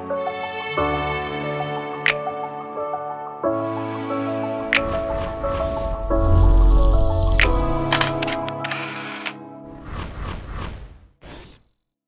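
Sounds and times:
camera shutter clicks: 7.9 - 9.4.

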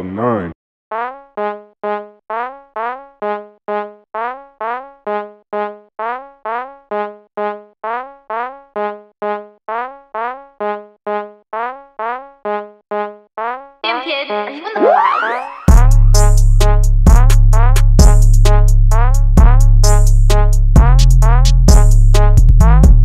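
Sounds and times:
synth melody: 13.8 - 22.3.

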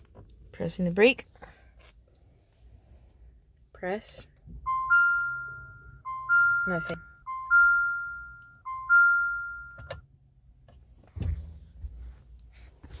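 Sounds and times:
two-note warning chime: 4.7 - 10.0.

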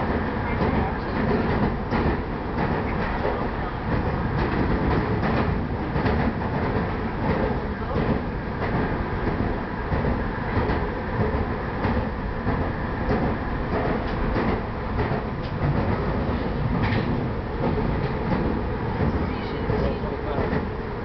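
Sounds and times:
train wheels running on rails: 0.0 - 21.0.

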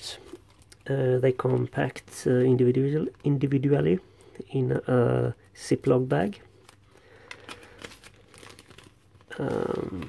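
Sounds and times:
plastic bag crinkling: 6.2 - 10.0.

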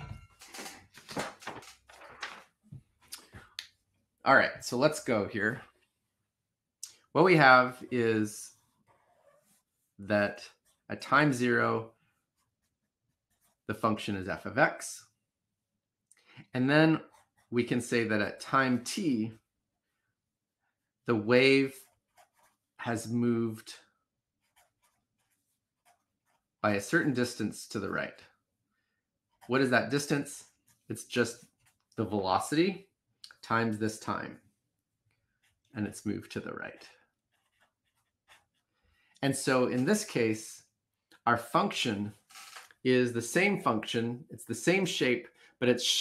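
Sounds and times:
pen scratching on paper: 7.6 - 14.0, 17.0 - 18.1, 21.6 - 23.1, 24.2 - 27.9, 29.2 - 32.0, 35.2 - 36.0, 36.6 - 39.0.

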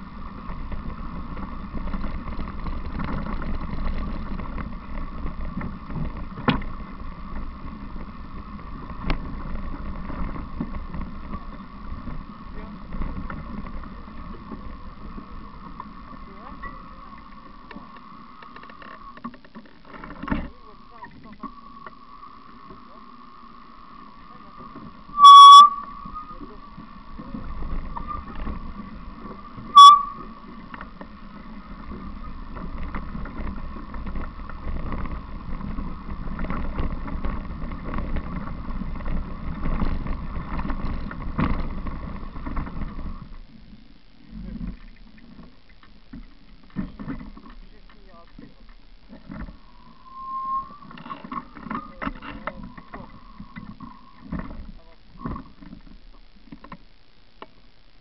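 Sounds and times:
bicycle rolling on dirt trail: 0.0 - 58.0
high whine: 0.0 - 58.0.

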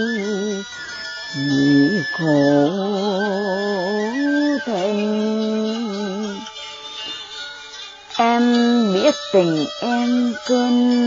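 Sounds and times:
soft instrumental accompaniment: 0.0 - 11.0
woman chanting poetry: 1.4 - 6.5, 8.2 - 11.0.

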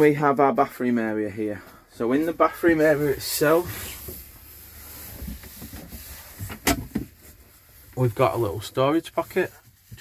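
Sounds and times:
cupboard door opening: 5.1 - 7.2.

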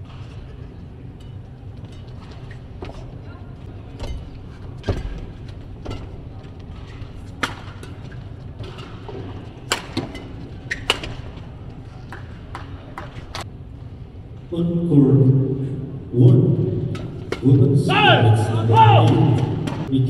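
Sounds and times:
low hum of hall: 0.0 - 20.0
racket striking shuttlecock: 6.8 - 11.4, 16.9 - 17.5, 19.0 - 19.9.

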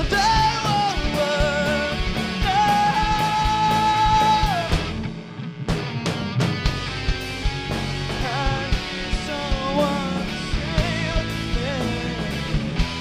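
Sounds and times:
bass guitar: 0.0 - 13.0
distorted electric guitars: 0.0 - 13.0
drum kit: 0.0 - 13.0.

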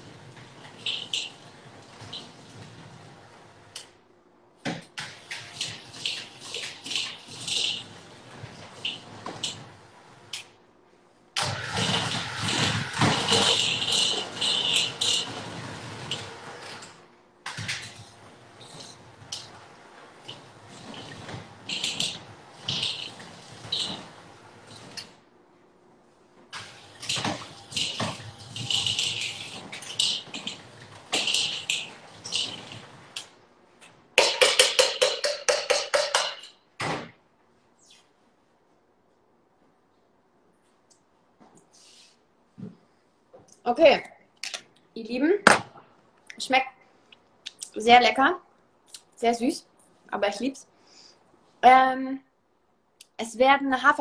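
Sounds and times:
beaters knocking on bowl: 34.2 - 36.5.

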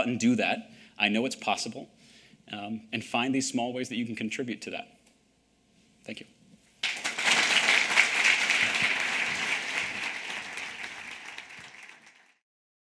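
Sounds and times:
audience applauding: 6.8 - 12.4.

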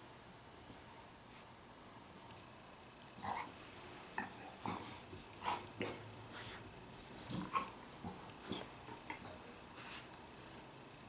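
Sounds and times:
dog noises: 3.2 - 10.1
dog rubbing on carpet: 6.3 - 6.7, 9.7 - 10.1.

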